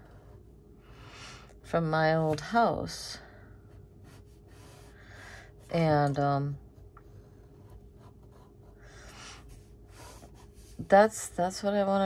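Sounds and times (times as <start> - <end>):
pen scratching on paper: 4.0 - 5.0, 7.0 - 10.9.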